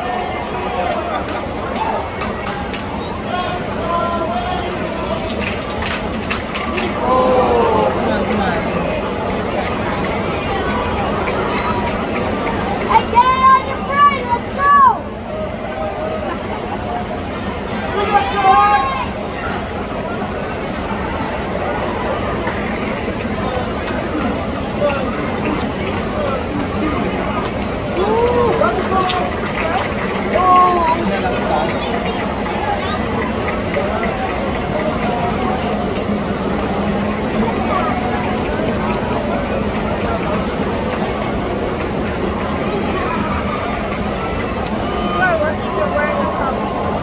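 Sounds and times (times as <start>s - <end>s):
murmur of crowd talking: 0.0s - 47.0s
people calling out: 6.9s - 8.7s.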